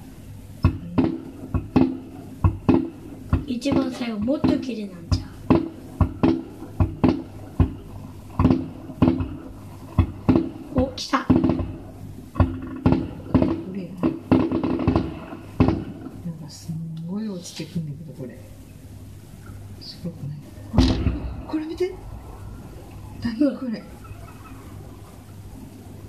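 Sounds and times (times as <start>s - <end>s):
fireworks bursting: 0.0s - 16.6s, 20.6s - 26.0s.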